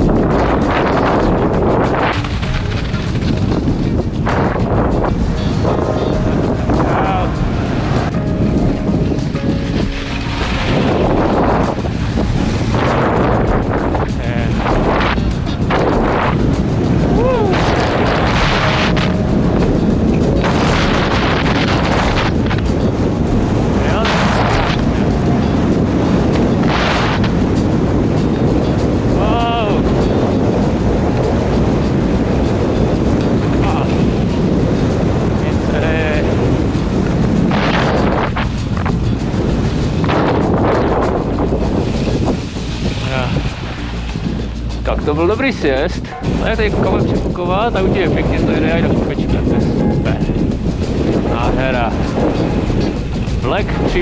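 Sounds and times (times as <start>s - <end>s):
wind buffeting microphone: 0.0s - 54.0s.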